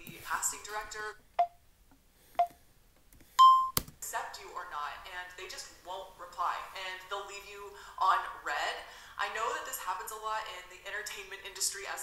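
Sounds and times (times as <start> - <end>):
short electronic beep: 3.4 - 3.8.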